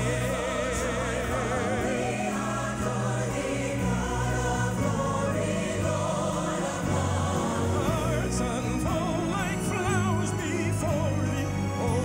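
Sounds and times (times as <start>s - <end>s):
group singing in harmony: 0.0s - 11.0s
sustained instrumental accompaniment: 0.0s - 12.0s.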